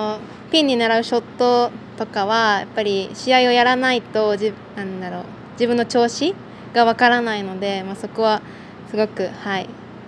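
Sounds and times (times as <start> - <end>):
woman speaking: 0.0 - 9.8.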